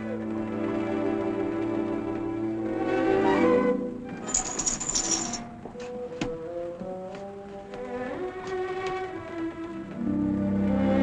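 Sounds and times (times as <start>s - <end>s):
curtain rings sliding on rail: 4.2s - 5.5s.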